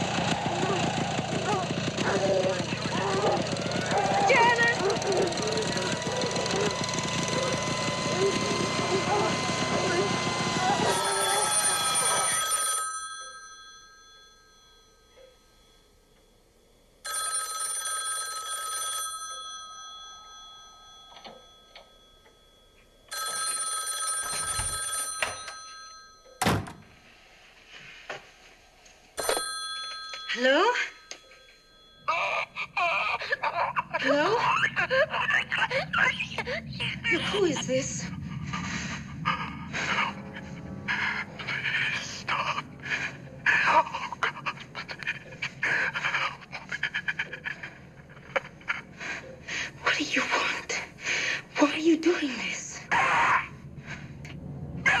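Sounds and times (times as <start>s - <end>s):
telephone bell ringing: 1.9s - 27.0s, 29.2s - 34.0s.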